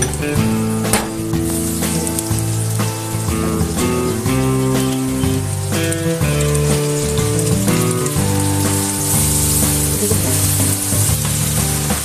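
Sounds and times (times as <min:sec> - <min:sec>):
fish roe and onions sizzling in pan: 0:00.0 - 0:12.0
instrumental background music: 0:00.0 - 0:12.0.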